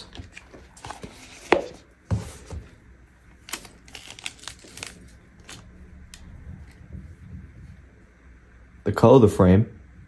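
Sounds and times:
plastic sleeve crinkling: 3.4s - 5.7s.

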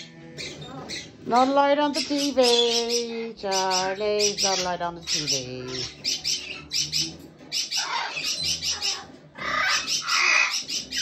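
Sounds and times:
cockatoo harsh chatter: 0.4s - 11.0s.

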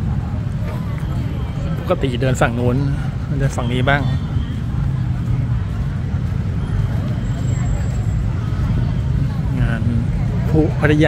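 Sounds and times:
faint voices of passers-by: 0.0s - 11.0s
street rumble: 0.0s - 11.0s.

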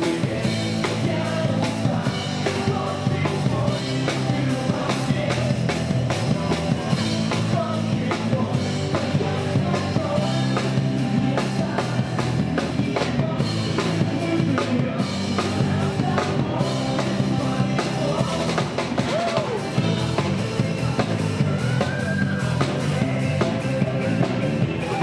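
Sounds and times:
drum kit beat: 0.0s - 25.0s
electric guitars: 0.0s - 25.0s.

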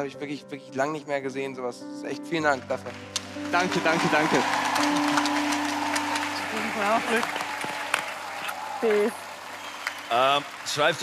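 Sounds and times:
soft background music: 0.0s - 11.0s
hand claps: 3.2s - 11.0s.

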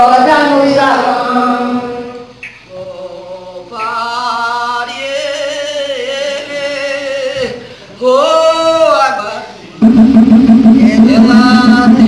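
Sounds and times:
fast drum beat: 9.8s - 12.0s.

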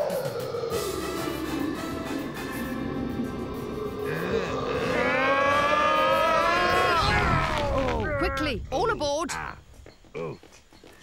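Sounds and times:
creature bellowing call: 0.0s - 8.3s.

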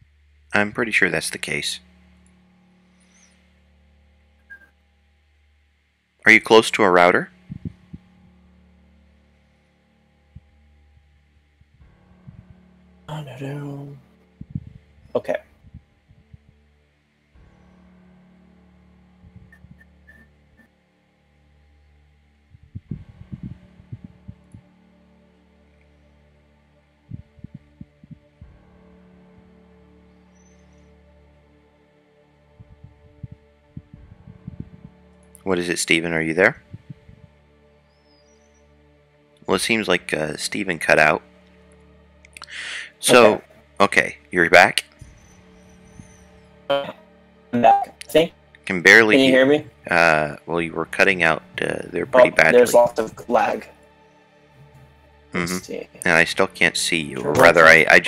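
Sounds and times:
faint low drone: 0.0s - 58.0s.

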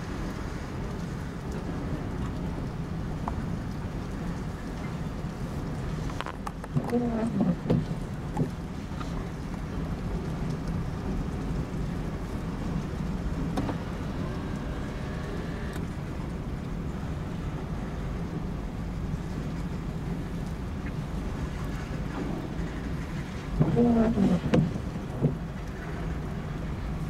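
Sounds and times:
rain on car windows: 0.0s - 27.0s.

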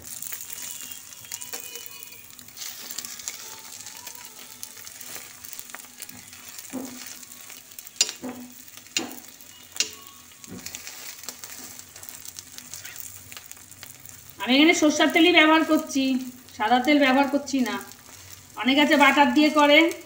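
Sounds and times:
bread sizzling in oil: 0.0s - 20.0s
spatula scraping a pan: 0.2s - 13.6s
spatula knocking on a pan: 6.6s - 7.2s, 7.9s - 10.8s.

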